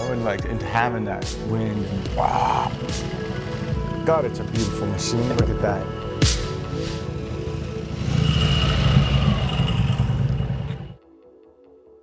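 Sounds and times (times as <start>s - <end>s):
faint background music: 0.0s - 9.3s
motorcycle engines pulling away: 2.2s - 11.0s.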